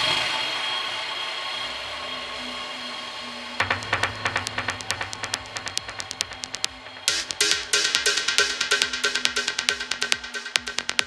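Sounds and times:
clicking electronic percussion: 3.6 - 11.0
noise wash: 3.6 - 11.0.

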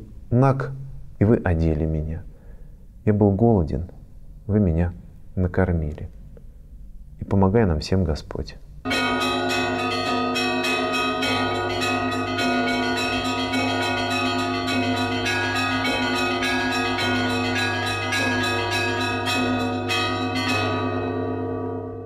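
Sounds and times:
small bells striking quickly: 8.9 - 21.5
low bell tone: 8.9 - 22.0.

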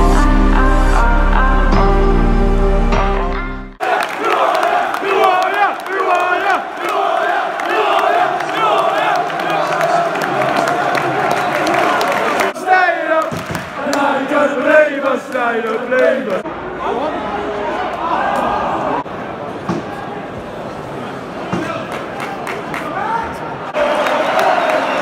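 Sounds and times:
crowd chanting and cheering: 3.0 - 20.4, 21.6 - 25.0.

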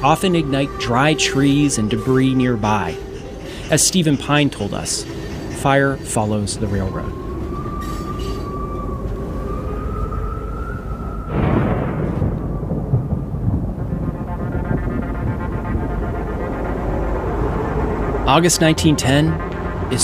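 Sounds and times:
steam train whistle: 0.0 - 8.8
train low rumble: 0.0 - 20.0.

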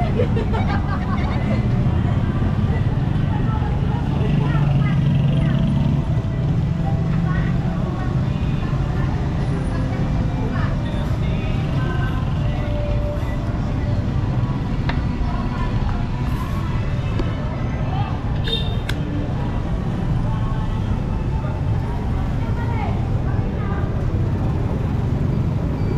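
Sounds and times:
vehicles running: 0.0 - 25.9.

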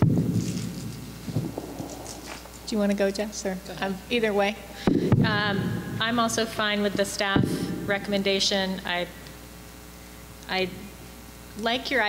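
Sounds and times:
low rumbling handling noise: 0.0 - 3.3
faint paper rustling: 0.3 - 3.0.

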